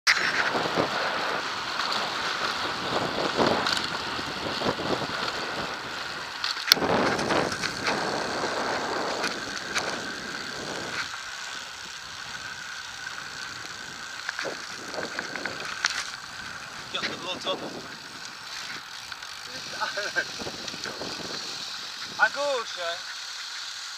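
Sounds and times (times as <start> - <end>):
bike rattles and clicks: 0.1 - 23.9
wind and tyre noise: 0.1 - 23.9.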